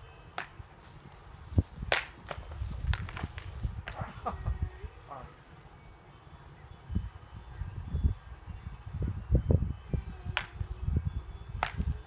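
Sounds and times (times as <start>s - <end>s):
faint high tinkling tones: 3.4s - 12.0s.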